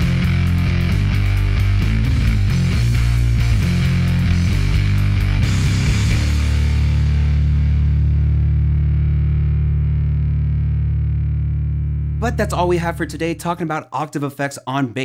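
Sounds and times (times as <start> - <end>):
distorted electric bass riff: 0.0 - 13.6.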